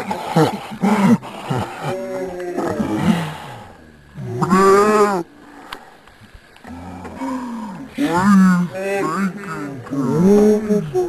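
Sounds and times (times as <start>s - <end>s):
slowed down roar-like groan: 0.0s - 5.8s, 6.6s - 11.0s.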